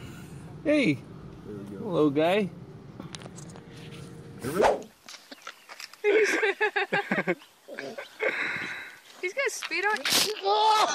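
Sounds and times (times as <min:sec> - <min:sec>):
person laughing: 0:06.0 - 0:08.5.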